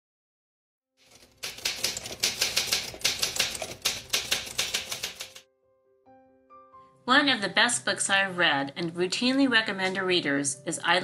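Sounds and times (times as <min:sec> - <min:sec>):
manual typewriter typing: 0:01.0 - 0:05.4.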